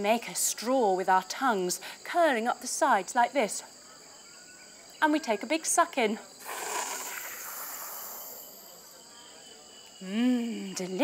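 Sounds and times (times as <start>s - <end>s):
person sucking in breath: 6.4s - 8.4s.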